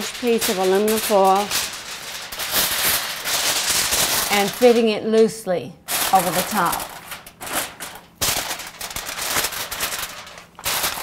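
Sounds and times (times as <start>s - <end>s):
aluminum foil crinkling: 0.0s - 5.3s, 5.9s - 11.0s.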